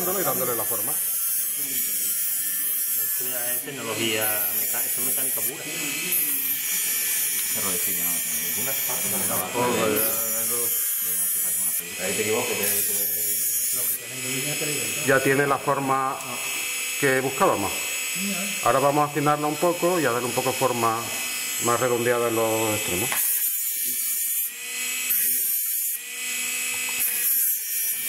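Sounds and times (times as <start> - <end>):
rotary tool grinding with high whine: 0.0 - 28.0.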